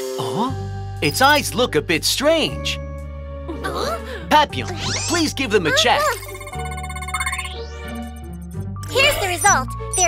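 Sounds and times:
background music: 0:00.0 - 0:10.0
rapid high beeping: 0:06.0 - 0:08.6.

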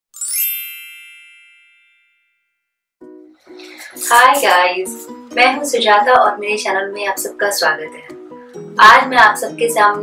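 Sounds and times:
sparkle chime: 0:00.2 - 0:02.6.

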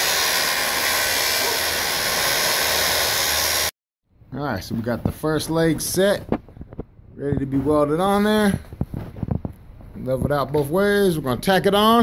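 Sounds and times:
power saw cutting steel: 0:00.0 - 0:03.7.

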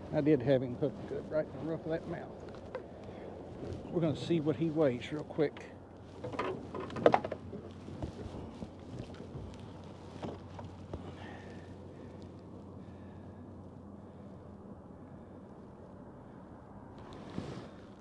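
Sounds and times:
light wind: 0:00.0 - 0:18.0
knocks and clicks in a boat: 0:05.5 - 0:11.2.

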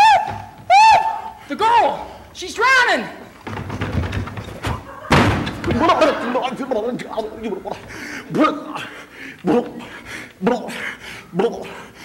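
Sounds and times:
person speaking: 0:01.4 - 0:03.4, 0:05.6 - 0:11.9
loud thud: 0:03.4 - 0:06.0.

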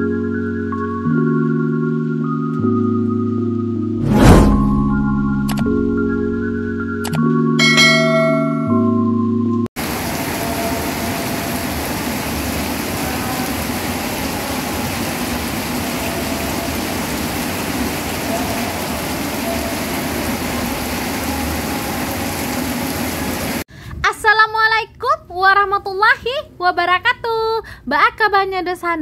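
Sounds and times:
mallet percussion jingle: 0:07.6 - 0:09.3
heavy rain on metal roofs: 0:09.8 - 0:23.7.

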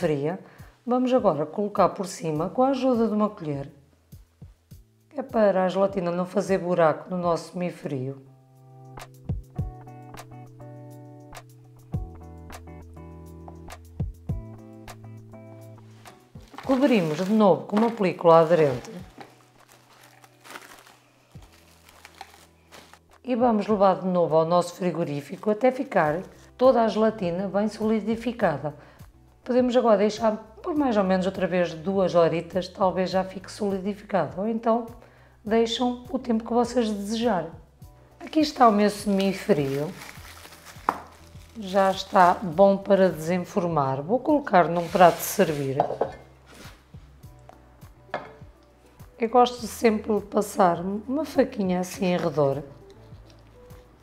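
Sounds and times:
cling film crinkling: 0:16.0 - 0:23.2, 0:38.5 - 0:42.6, 0:52.7 - 0:54.0.

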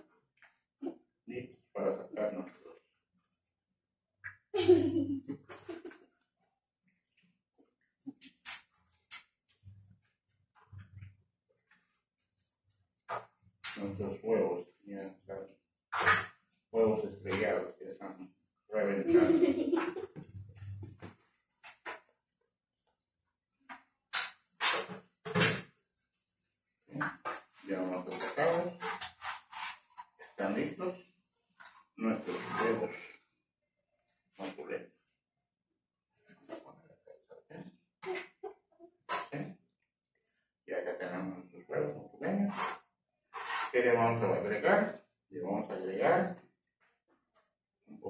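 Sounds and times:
man speaking: 0:01.3 - 0:02.7, 0:13.8 - 0:15.4, 0:16.8 - 0:19.4, 0:27.0 - 0:28.8, 0:30.4 - 0:30.9, 0:32.0 - 0:33.1, 0:34.4 - 0:34.8, 0:40.7 - 0:42.6, 0:43.7 - 0:46.3.

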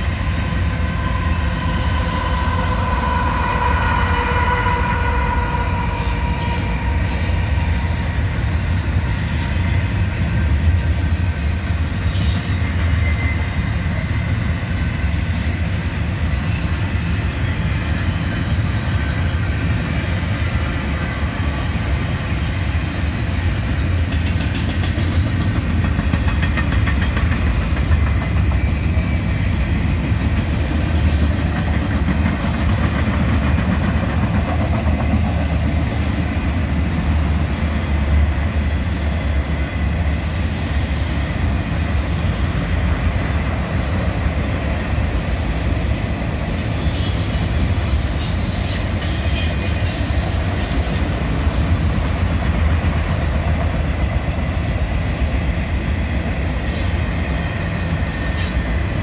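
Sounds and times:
freight train wheels rumbling: 0:00.0 - 0:59.0
locomotive passing: 0:00.0 - 0:59.0.

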